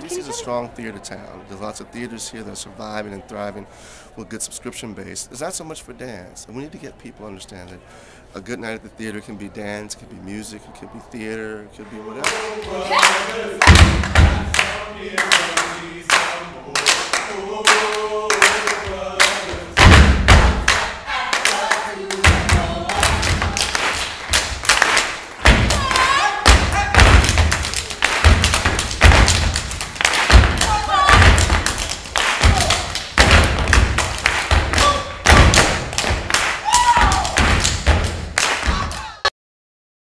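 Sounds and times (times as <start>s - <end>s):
claps and slaps: 12.2s - 39.1s
dancers stomping on stage: 13.6s - 14.6s, 19.5s - 20.8s, 24.3s - 39.0s.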